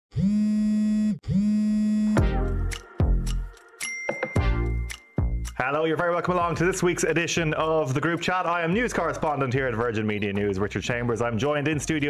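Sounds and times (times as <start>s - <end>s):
synthesized sliding notes: 1.4s - 5.6s.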